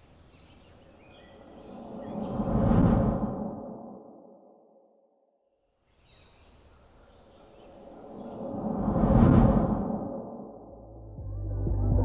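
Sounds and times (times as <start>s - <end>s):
faint outdoor ambience: 0.0s - 5.0s, 5.6s - 10.8s
sound design riser: 1.5s - 4.5s, 7.7s - 12.0s.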